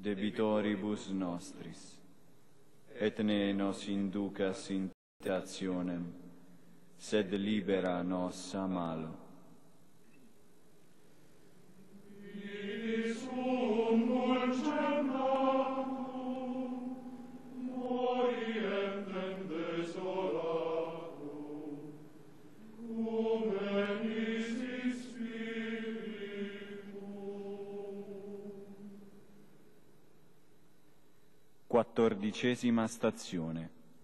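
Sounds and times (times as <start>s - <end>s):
male choir chanting: 12.0s - 29.1s.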